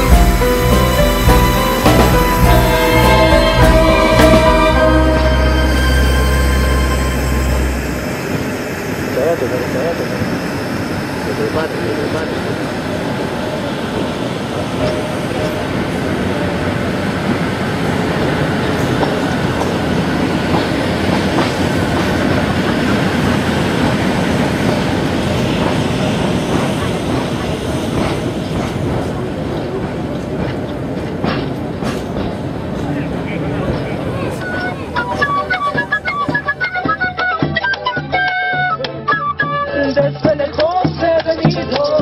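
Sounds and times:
background music: 0.0 - 9.3, 34.4 - 42.0
passenger train moving: 0.0 - 42.0
wheels clacking over rail joints: 14.0 - 38.5.

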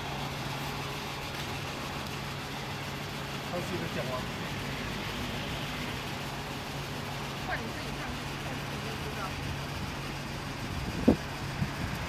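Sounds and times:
fuel pump humming: 0.0 - 12.0.

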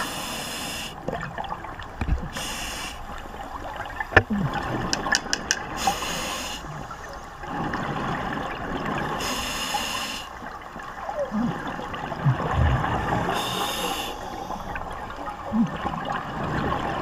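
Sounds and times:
regulator hissing on inhale: 0.0 - 1.0, 2.4 - 3.4, 5.8 - 6.7, 9.2 - 10.4, 13.4 - 14.8
exhaled bubbles gurgling: 1.0 - 17.0.

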